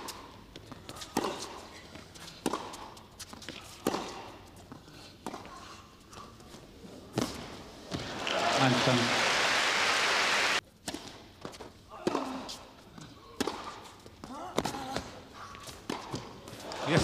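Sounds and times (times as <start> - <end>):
crowd applause: 8.0 - 10.6
rackets striking ball: 13.3 - 15.1.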